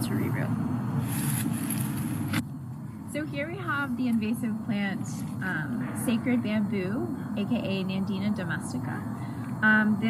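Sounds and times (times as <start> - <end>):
outdoor rumble with hiss: 0.0 - 10.0.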